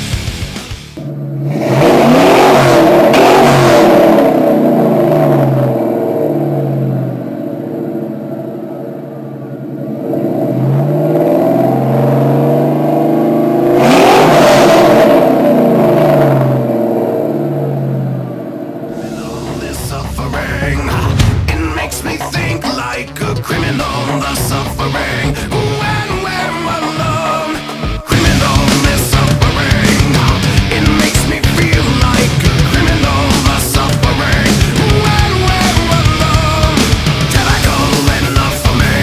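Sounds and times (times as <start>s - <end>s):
car engine revving: 0.0s - 39.0s.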